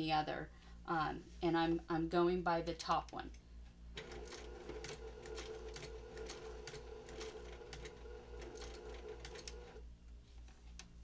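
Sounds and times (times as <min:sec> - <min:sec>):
sewing machine stitching: 0:04.0 - 0:09.8.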